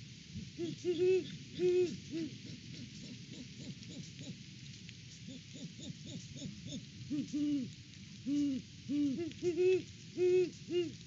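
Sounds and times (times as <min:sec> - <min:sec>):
owls hooting: 0:00.6 - 0:04.4, 0:05.3 - 0:07.7, 0:08.3 - 0:11.0.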